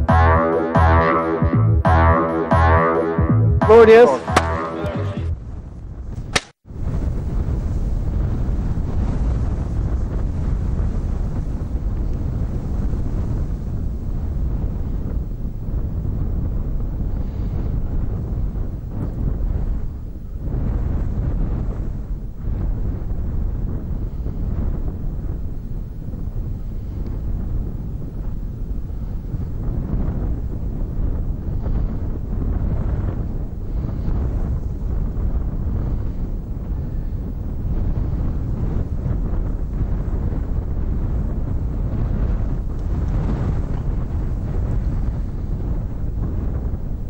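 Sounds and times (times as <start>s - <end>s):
wind buffeting microphone: 3.7s - 47.0s.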